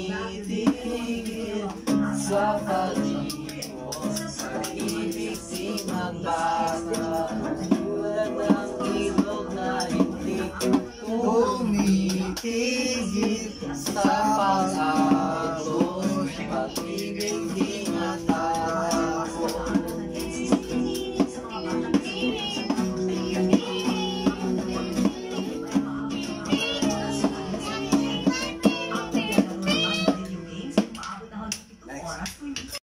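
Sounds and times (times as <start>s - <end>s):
acoustic guitar strumming: 0.0s - 30.8s
people singing along: 0.0s - 30.8s
hand drumming on plastic container: 3.0s - 10.9s.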